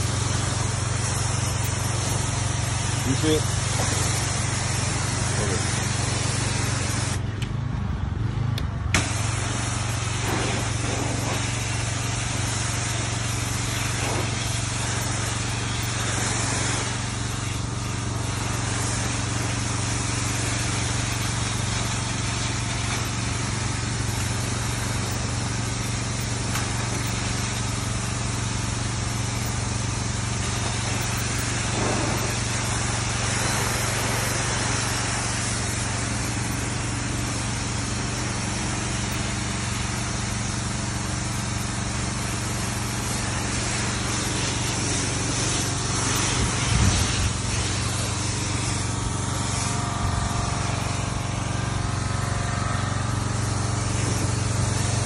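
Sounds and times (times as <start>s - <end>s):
water jet hissing on concrete: 0.0s - 7.3s, 9.0s - 55.0s
pressure washer motor drone: 0.0s - 55.0s.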